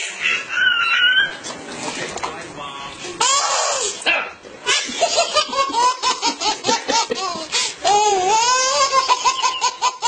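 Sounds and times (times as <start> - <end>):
person laughing hard: 4.7 - 10.0.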